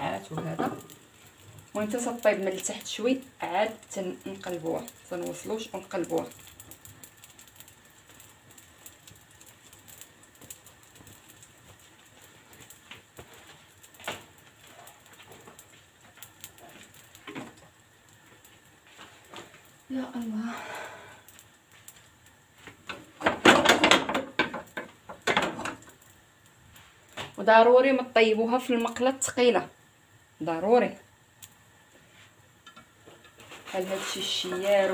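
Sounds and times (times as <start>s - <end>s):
dough crackling in hot pan: 0.0s - 34.9s.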